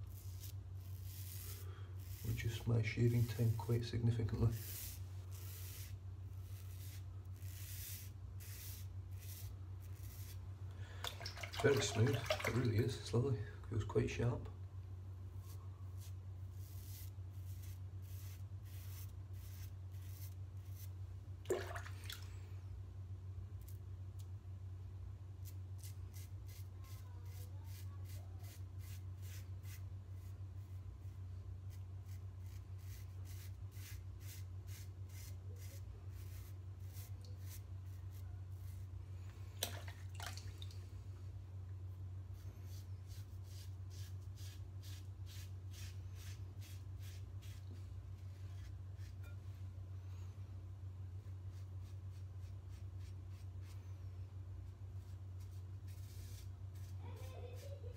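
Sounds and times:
razor scraping stubble: 0.0 - 10.4, 15.4 - 20.9, 25.4 - 30.8, 31.7 - 38.9, 42.4 - 49.4.

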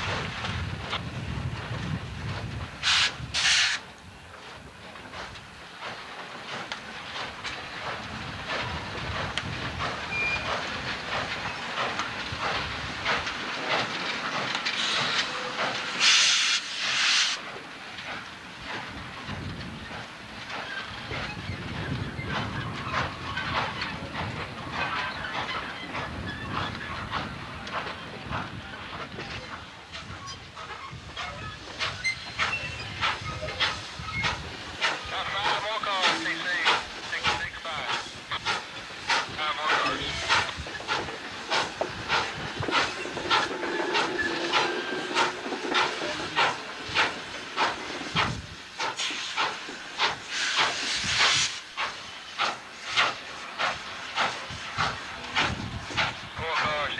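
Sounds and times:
loud steam hiss: 0.0 - 56.9
steam locomotive chugging: 0.0 - 56.9.

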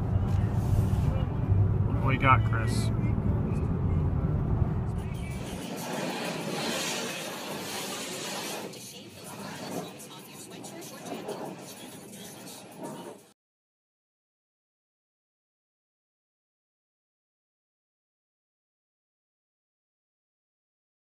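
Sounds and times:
car road noise rumble: 0.0 - 7.6.

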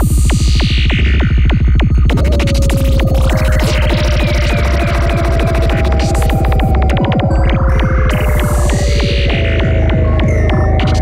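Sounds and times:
rolling bassline and kick: 0.0 - 11.0.

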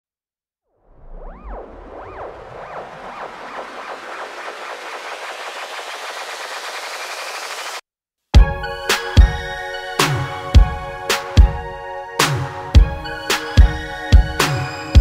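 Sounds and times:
electronic riser whoosh: 0.8 - 7.8
repeated arching tones: 0.8 - 7.8.

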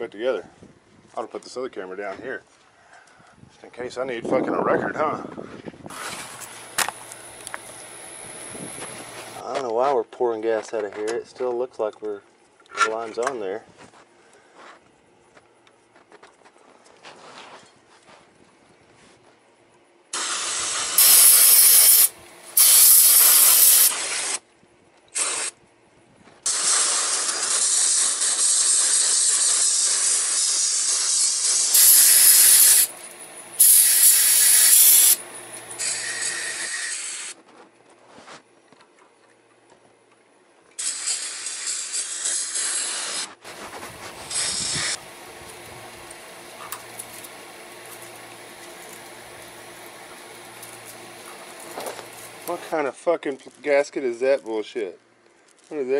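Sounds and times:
aerosol spray hissing: 5.9 - 9.4, 20.2 - 24.4, 26.5 - 37.1, 40.8 - 52.7.

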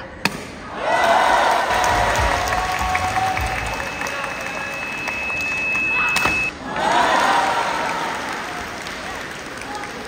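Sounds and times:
audience cheering: 0.8 - 9.2
audience applauding: 1.4 - 6.1, 6.8 - 10.0.

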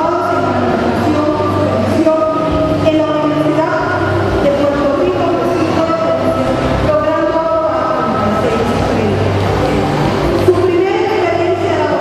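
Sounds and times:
woman reading over a pa system: 0.0 - 9.5, 10.3 - 12.0.

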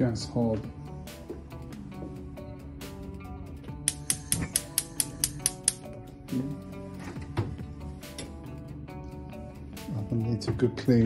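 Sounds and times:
background music: 0.0 - 11.0
gas hob spark igniter clicking: 3.8 - 5.9.

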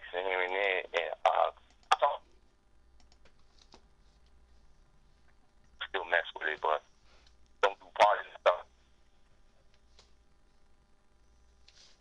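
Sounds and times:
voice over phone line: 0.0 - 2.2, 5.8 - 6.8, 7.6 - 8.7.

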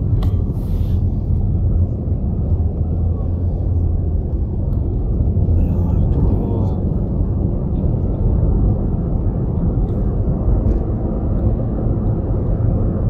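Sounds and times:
road noise: 0.0 - 13.0
vehicle engine rumble: 0.0 - 13.0.

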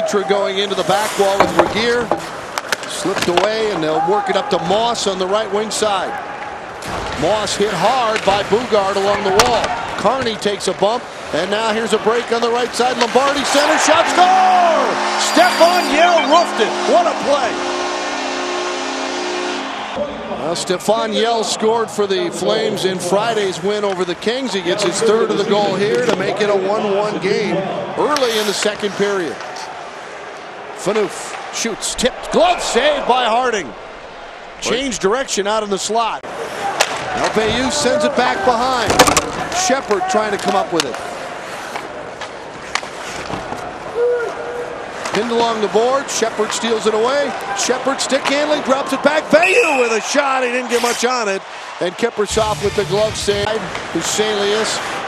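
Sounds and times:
hockey sticks and puck clacking: 0.7 - 4.4, 6.4 - 10.6, 11.4 - 16.9, 36.6 - 43.9, 45.0 - 48.8, 53.7 - 54.9
crowd cheering: 3.7 - 7.4, 11.8 - 22.0, 28.9 - 40.5, 46.7 - 55.0
arena goal horn: 13.6 - 20.0, 49.4 - 50.1.

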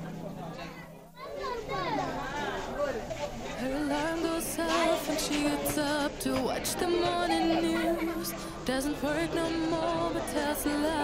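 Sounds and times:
children talking and calling out: 0.5 - 2.7, 3.6 - 11.0.

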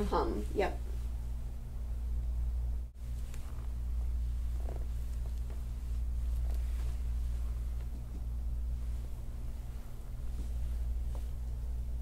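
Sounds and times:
faint pulsing rumble: 0.0 - 12.0
steady low hum: 0.0 - 12.0.

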